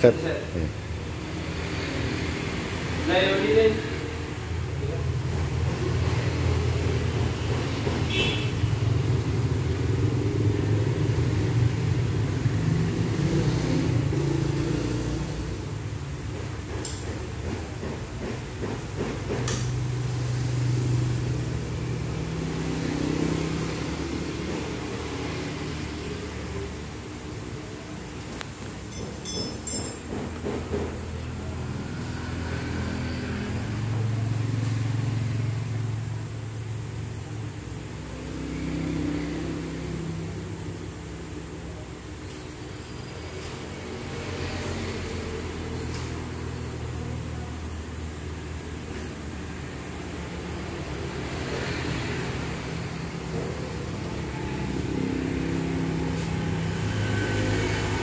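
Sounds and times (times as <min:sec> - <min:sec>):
vehicle engines rumbling: 0:00.0 - 0:58.0.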